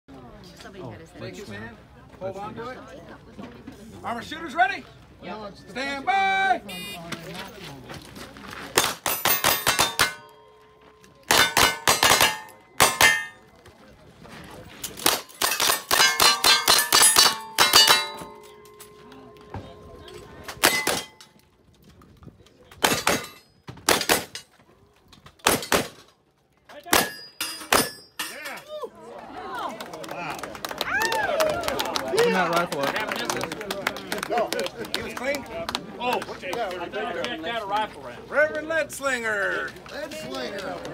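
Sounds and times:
people talking: 0.1 - 8.8, 17.9 - 21.0, 28.2 - 40.9
metallic clang of steel targets: 8.8 - 13.5, 14.8 - 21.4, 22.8 - 24.5, 25.4 - 26.1, 26.9 - 28.7
guns firing rapidly: 11.3 - 13.3.

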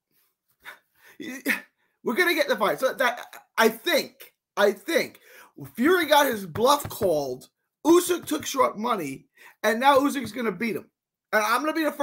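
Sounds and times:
man making wordless vocal sounds: 1.2 - 1.7.

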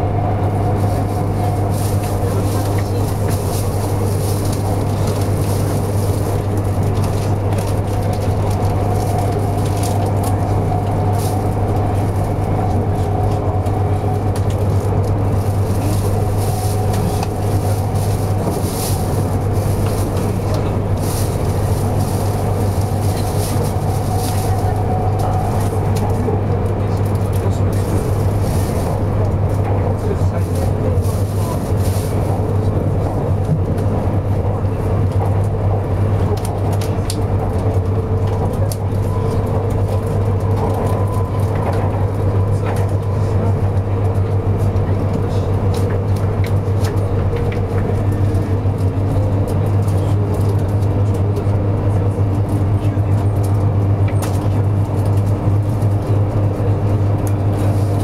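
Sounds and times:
train cabin running noise: 0.0 - 58.0.

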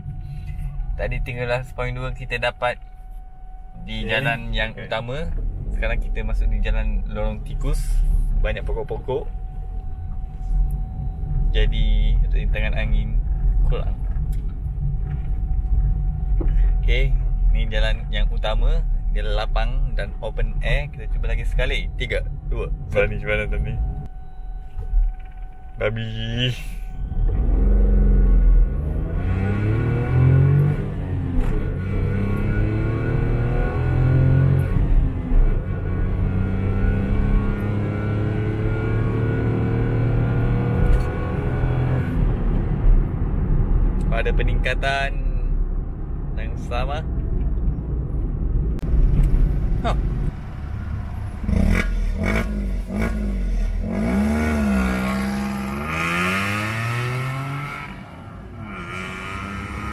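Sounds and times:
car engine and exhaust from inside: 0.0 - 59.9
car engine accelerating hard: 27.1 - 42.9, 48.8 - 59.9.

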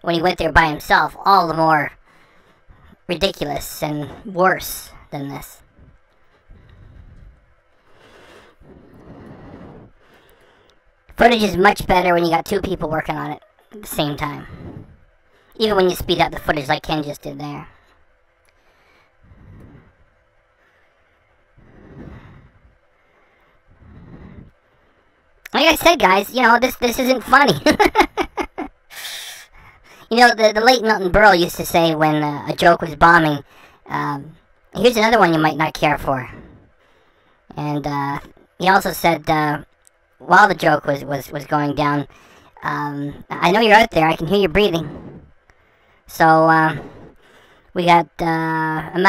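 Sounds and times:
wind rumbling on microphone: 5.6 - 7.6, 8.6 - 10.0, 14.4 - 15.1, 19.2 - 20.2, 21.6 - 22.8, 23.7 - 24.6
breathy exhale: 5.7 - 10.8, 18.6 - 25.2
man laughing: 27.4 - 29.4.

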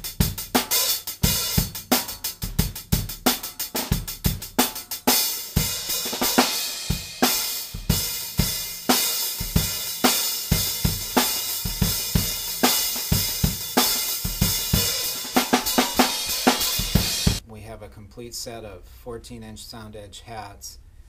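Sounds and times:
bass drum: 0.0 - 17.4
drum kit playing: 0.0 - 17.4
cymbal crash ringing: 11.4 - 17.4.

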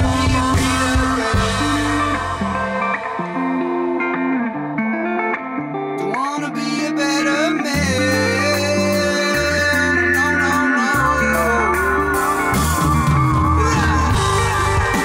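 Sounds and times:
drums: 0.0 - 4.5, 7.2 - 15.0
bass guitar: 0.0 - 15.0
electric guitars with bent notes: 0.0 - 15.0.

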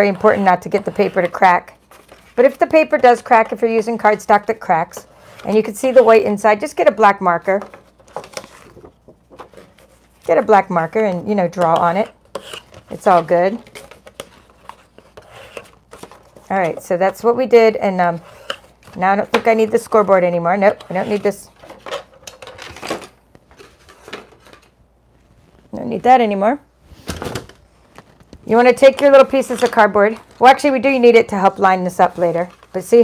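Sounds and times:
paper rustling: 0.0 - 3.1, 7.6 - 11.1, 31.4 - 33.0.

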